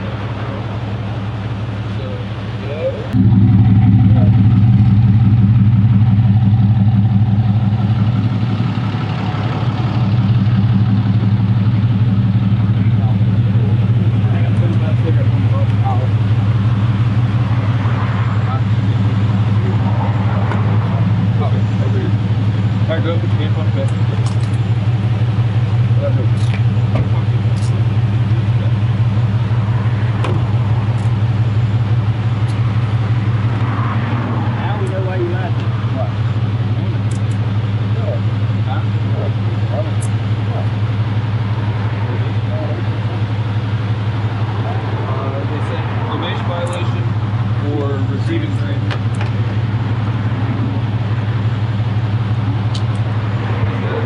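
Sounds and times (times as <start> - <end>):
vehicle engine idling: 0.0 - 54.0.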